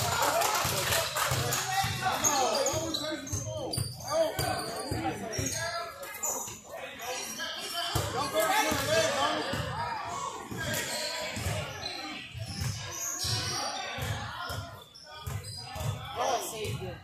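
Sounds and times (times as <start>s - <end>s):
voices of players and spectators: 0.0s - 17.0s
basketball bouncing on court floor: 12.4s - 17.0s.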